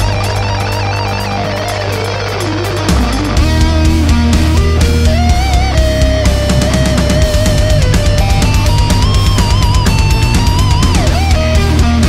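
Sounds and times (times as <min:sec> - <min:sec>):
lead electric guitar melody: 0:00.0 - 0:12.0.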